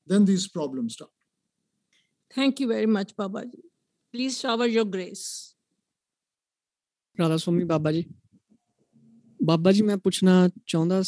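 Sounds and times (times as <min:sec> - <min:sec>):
person speaking: 0:07.2 - 0:08.3.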